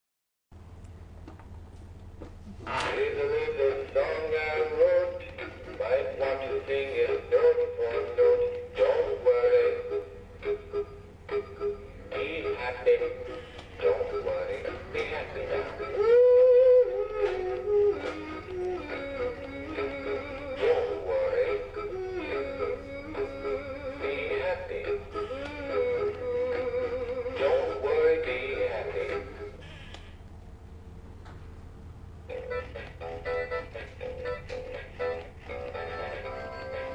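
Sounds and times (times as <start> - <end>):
faint steady hum: 0.6 - 36.9
singing fish toy song: 2.9 - 29.3
tinny voice singing over backing track: 12.1 - 25.1.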